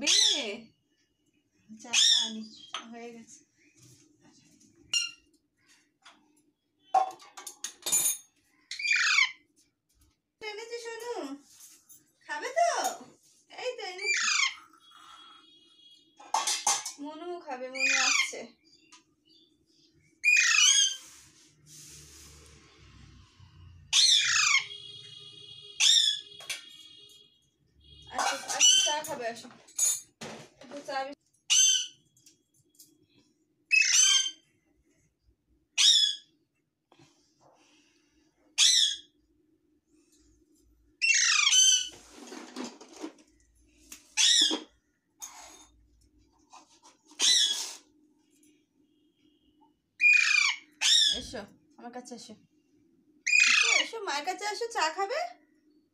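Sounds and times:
parakeet warbling call and squeal: 0.0s - 0.6s, 1.9s - 2.8s, 8.7s - 9.4s, 14.0s - 15.9s, 17.7s - 18.6s, 20.2s - 21.0s, 23.9s - 25.2s, 25.8s - 26.4s, 28.1s - 29.0s, 31.5s - 32.0s, 33.7s - 34.5s, 35.8s - 36.4s, 38.6s - 39.2s, 41.0s - 42.0s, 44.2s - 44.7s, 47.2s - 47.8s, 50.0s - 51.4s, 53.3s - 54.0s.

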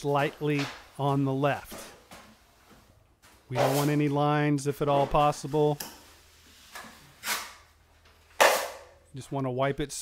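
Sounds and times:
drywall knife scraping: 6.4s - 7.7s.

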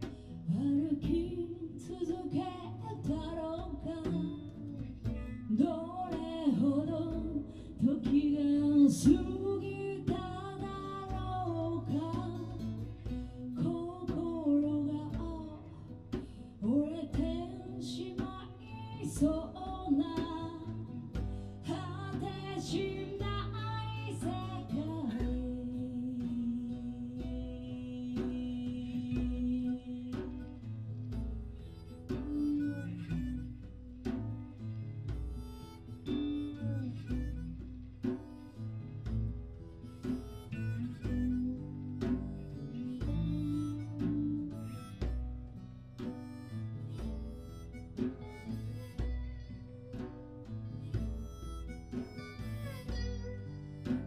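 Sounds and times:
acoustic guitars playing: 0.0s - 54.0s
percussion beat: 0.0s - 54.0s.

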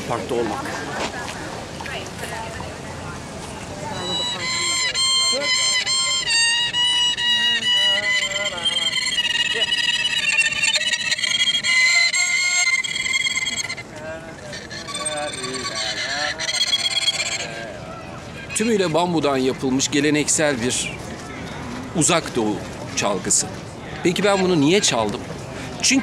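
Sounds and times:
bowed fiddle melody: 3.8s - 17.7s.

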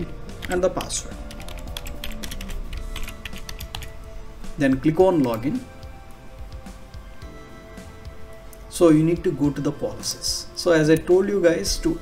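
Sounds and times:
soft background music: 0.0s - 12.0s
computer keyboard typing: 0.4s - 4.0s.

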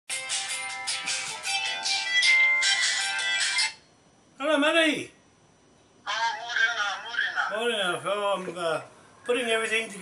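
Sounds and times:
phone ringtone melody: 0.1s - 3.8s.

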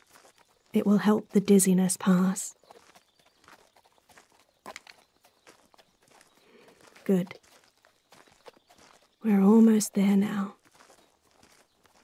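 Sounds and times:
footsteps: 0.0s - 12.0s
horse hooves clip-clop: 0.0s - 12.0s.

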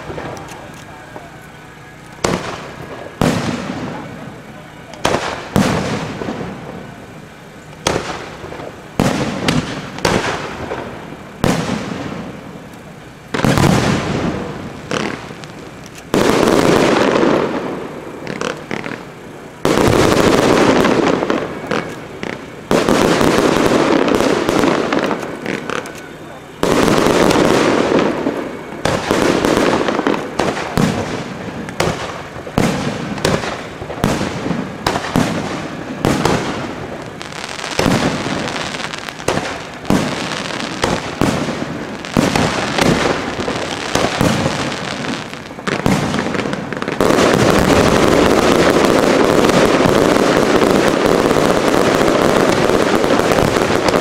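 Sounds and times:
fireworks bangs and crackles: 0.0s - 54.0s
fireworks shells bursting: 7.6s - 54.0s.

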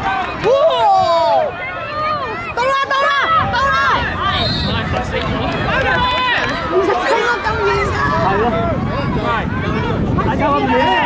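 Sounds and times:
children calling and chattering: 0.0s - 11.0s
outdoor crowd murmur: 0.0s - 11.0s.

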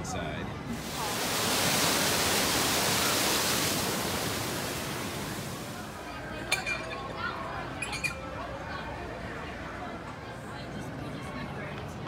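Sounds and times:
water rushing over waterfall: 0.7s - 6.2s.

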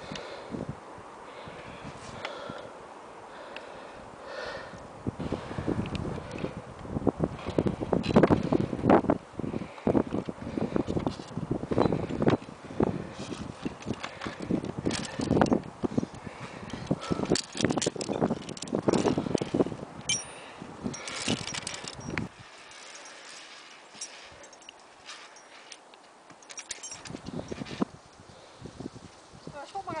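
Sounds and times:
metal carabiners clinking: 13.3s - 15.6s, 16.7s - 27.8s.

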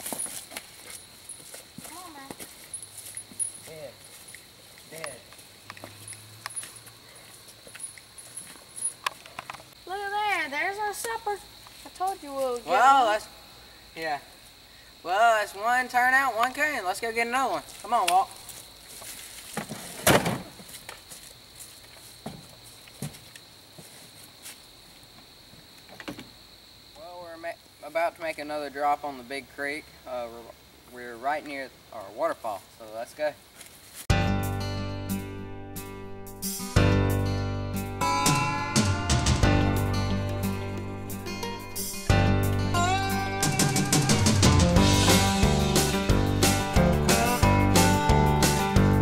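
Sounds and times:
footsteps rustling through leaves: 0.0s - 8.8s, 17.5s - 20.0s, 20.6s - 24.7s, 33.4s - 34.1s
insect trill: 0.0s - 34.0s, 34.6s - 49.0s.

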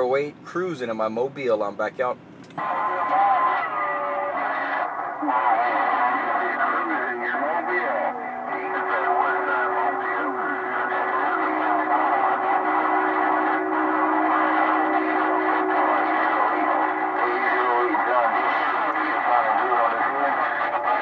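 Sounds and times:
garbled overlapping radio voices: 0.0s - 21.0s.

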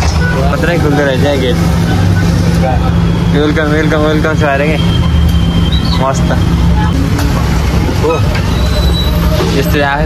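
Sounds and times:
bus engine humming: 0.0s - 10.0s
voices: 0.0s - 10.0s.

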